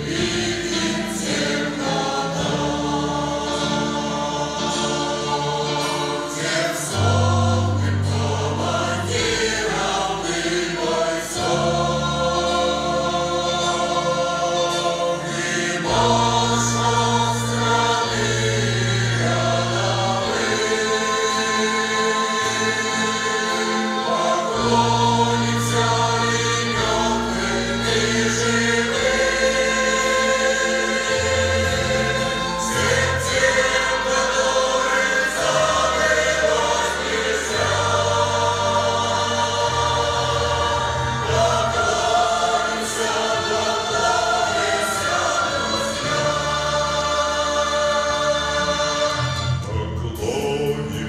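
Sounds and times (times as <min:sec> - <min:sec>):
instrumental accompaniment: 0:00.0 - 0:51.0
mixed choir singing: 0:00.0 - 0:51.0.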